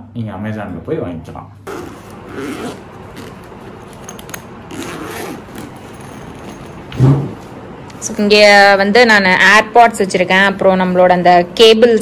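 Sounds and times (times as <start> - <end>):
zipper rasping: 1.6 - 6.6.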